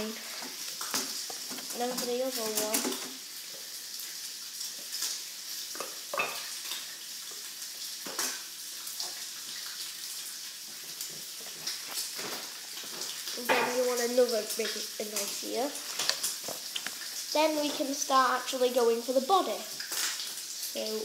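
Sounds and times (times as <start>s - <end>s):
steady light hiss: 0.0s - 21.0s.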